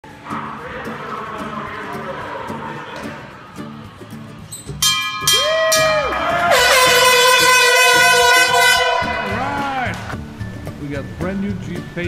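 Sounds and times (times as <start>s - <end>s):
brass bell ringing: 4.8s - 10.0s
loud horn-like blast: 6.5s - 10.1s.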